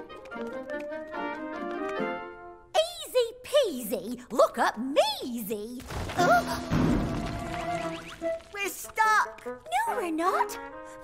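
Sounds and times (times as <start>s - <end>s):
cartoon background music: 6.2s - 11.0s.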